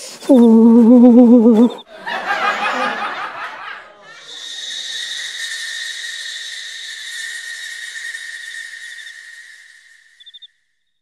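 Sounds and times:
snickering laugh: 0:00.9 - 0:04.0
shrill two-tone drone: 0:04.2 - 0:10.2
hiss: 0:04.3 - 0:10.3.

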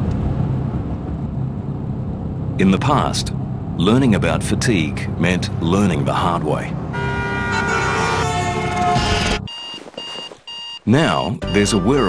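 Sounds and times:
alarm clock beeping: 0:08.9 - 0:12.0.

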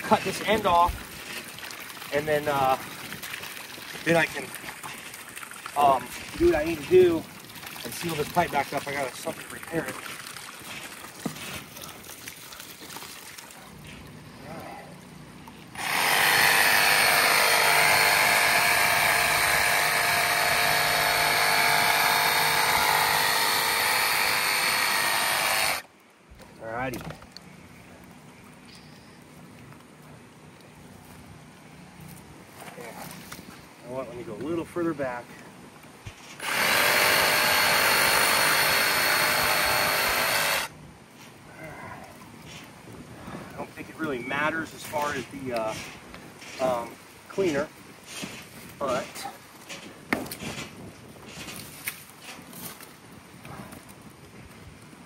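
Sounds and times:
power tool cutting plastic pipe: 0:15.7 - 0:25.9, 0:36.4 - 0:40.7.

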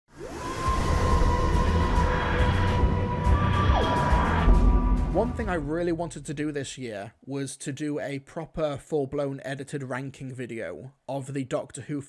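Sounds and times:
synth tone swooping: 0:00.1 - 0:05.6
synth tone sliding down: 0:00.1 - 0:05.7.

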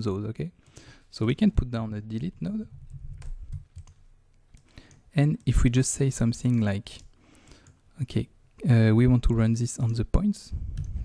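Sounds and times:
keyboard and mouse clicking: 0:02.9 - 0:05.6, 0:06.4 - 0:07.8, 0:10.7 - 0:11.0.

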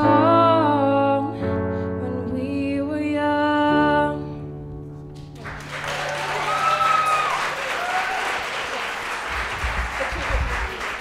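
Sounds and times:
woman singing into microphone: 0:00.0 - 0:04.4.

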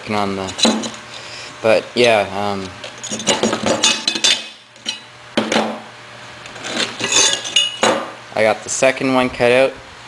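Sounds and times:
metal plates clinking: 0:03.0 - 0:05.1, 0:06.8 - 0:08.0.

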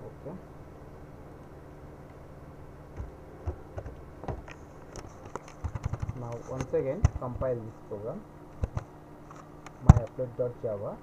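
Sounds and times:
low steady hum: 0:00.0 - 0:11.0
computer keys and mouse clicking: 0:03.0 - 0:07.4, 0:08.6 - 0:10.1.

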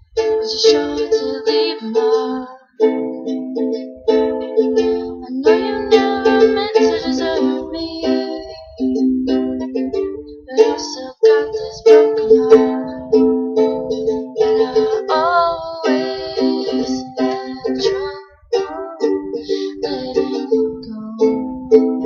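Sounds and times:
person singing: 0:00.0 - 0:03.8, 0:04.6 - 0:22.0
ukulele strummed: 0:00.0 - 0:22.0.

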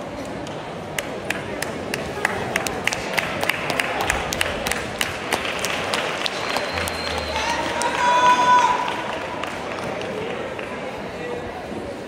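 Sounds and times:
sports hall crowd noise: 0:00.0 - 0:12.0
hand claps: 0:00.2 - 0:08.1.

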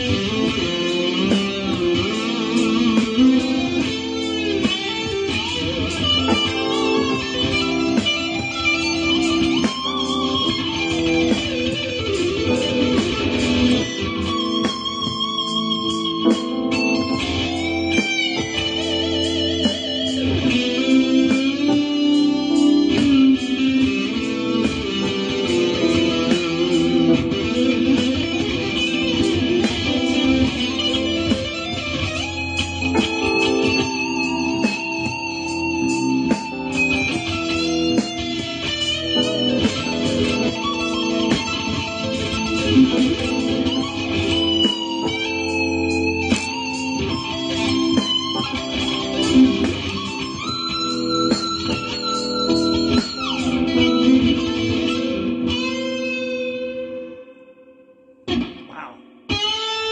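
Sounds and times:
backing track of sustained chords: 0:00.0 - 0:59.9
electric guitar lead lines: 0:00.0 - 0:59.9.

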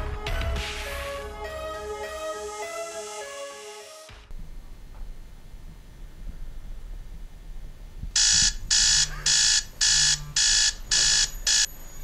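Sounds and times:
alarm clock beeping: 0:08.2 - 0:12.0.

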